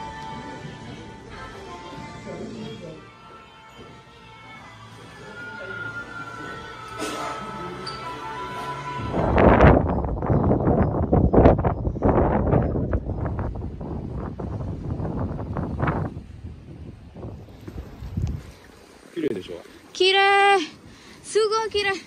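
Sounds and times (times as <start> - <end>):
music: 0.0 - 12.3
wind buffeting microphone: 9.0 - 18.8.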